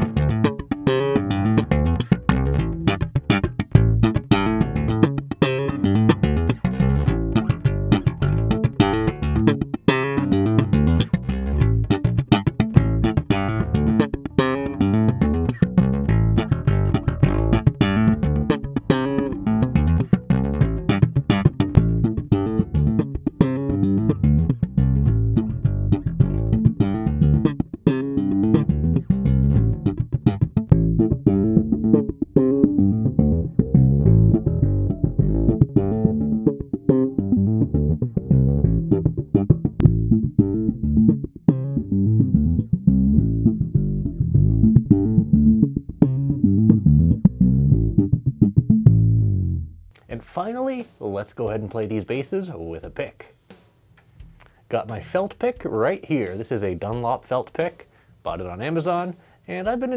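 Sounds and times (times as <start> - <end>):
slap bass notes: 0.0 - 59.9.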